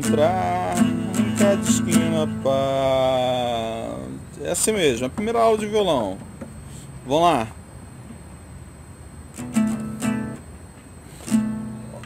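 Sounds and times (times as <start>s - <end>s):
classical guitar chords strummed: 0.0s - 3.6s, 9.3s - 10.4s, 11.2s - 12.0s.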